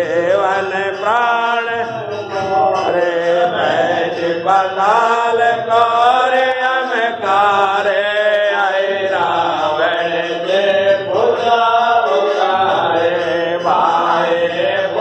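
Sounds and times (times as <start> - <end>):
voices chanting a devotional hymn: 0.0 - 15.0.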